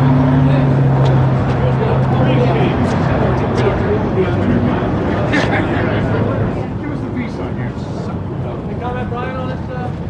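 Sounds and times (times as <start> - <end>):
faint voices: 0.0 - 10.0
vehicle engine running: 0.0 - 10.0.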